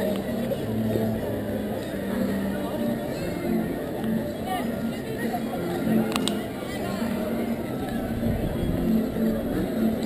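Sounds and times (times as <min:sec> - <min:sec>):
crowd talking: 0:00.0 - 0:10.0
faint music of held notes: 0:00.0 - 0:10.0.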